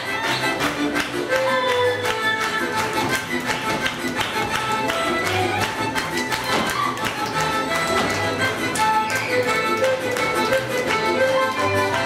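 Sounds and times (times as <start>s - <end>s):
fiddle folk dance music: 0.0s - 12.0s
feet stamping on stage floor: 2.2s - 11.2s.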